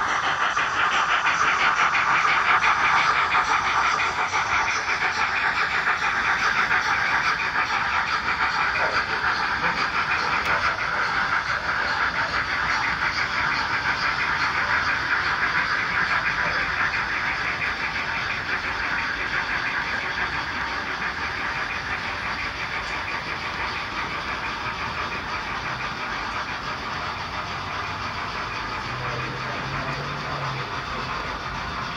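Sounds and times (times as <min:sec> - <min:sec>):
model train wheels clattering on rails: 0:00.0 - 0:31.9.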